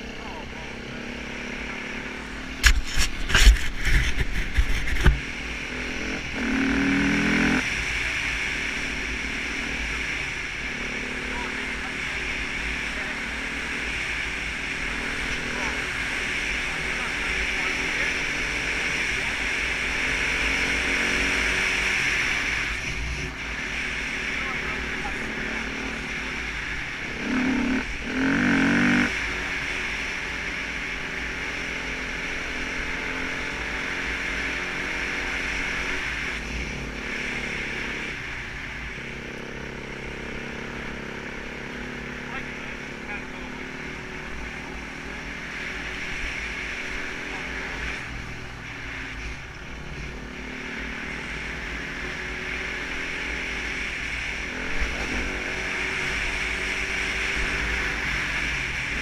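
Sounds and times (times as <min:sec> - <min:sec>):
motorcycle engine running: 0:00.0 - 0:59.0
wind noise: 0:02.6 - 0:05.3.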